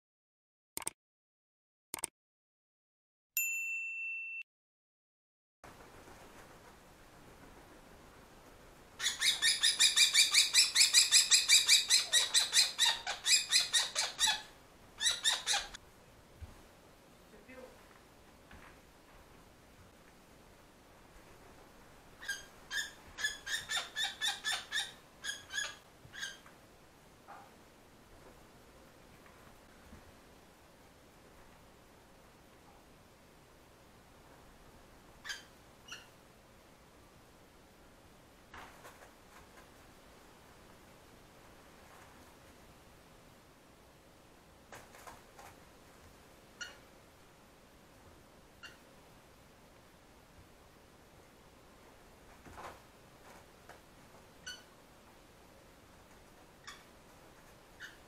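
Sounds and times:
kestrel calling: 9.0 - 15.8, 22.2 - 26.4.

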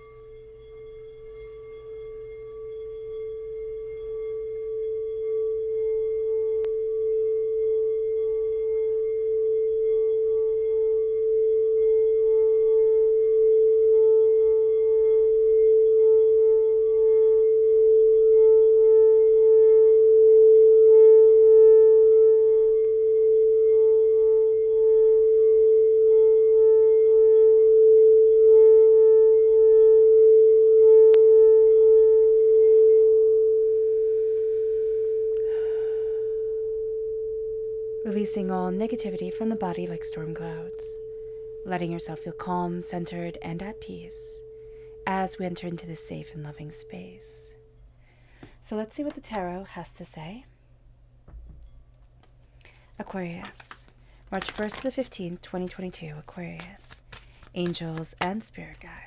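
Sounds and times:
crystal singing bowl tone: 0.0 - 50.4.

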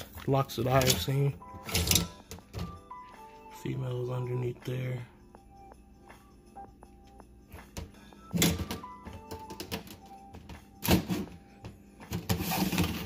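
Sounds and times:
faint background music: 0.0 - 13.0.

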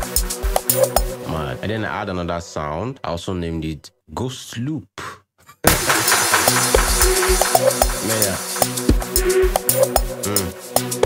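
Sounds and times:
deep drum hits: 5.7 - 10.1.

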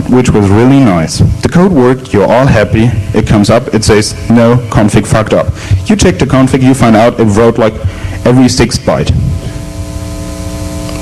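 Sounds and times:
electrical hum and hiss: 0.0 - 11.0
faint held tones: 9.2 - 11.0.

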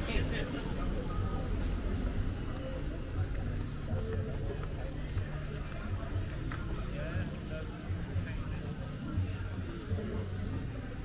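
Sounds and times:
indistinct voices of passers-by: 0.0 - 11.0
soft footsteps: 0.6 - 11.0.

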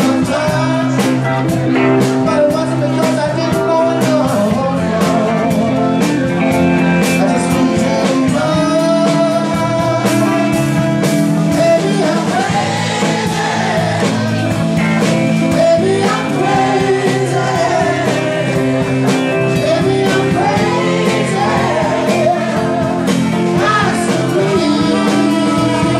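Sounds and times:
man singing into a microphone: 0.0 - 14.6, 15.4 - 25.9
live band playing soul rock: 0.0 - 25.9.

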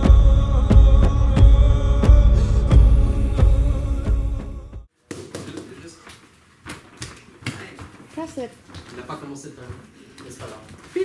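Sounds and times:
sticks knocking in sparring: 5.1 - 8.0.

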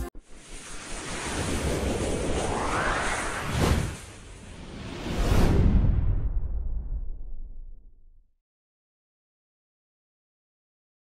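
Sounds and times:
rushing whoosh: 0.4 - 7.6.

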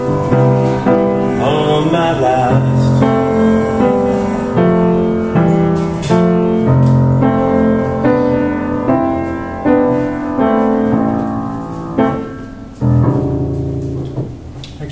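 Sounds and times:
upright piano chords: 0.0 - 14.9.

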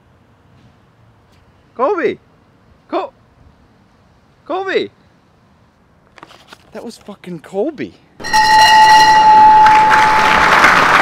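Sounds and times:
bell-like ringing tone: 8.2 - 11.0
crowd clapping and cheering: 9.1 - 11.0.

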